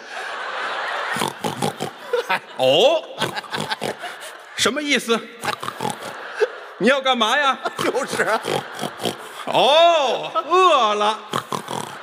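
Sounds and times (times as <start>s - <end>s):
audience laughing: 0.0s - 12.0s.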